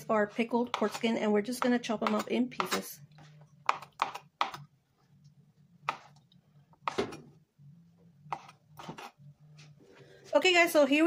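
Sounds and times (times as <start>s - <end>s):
knife chopping on plastic board: 0.6s - 2.9s, 3.6s - 4.7s, 5.8s - 6.1s, 6.8s - 7.3s, 8.3s - 9.1s.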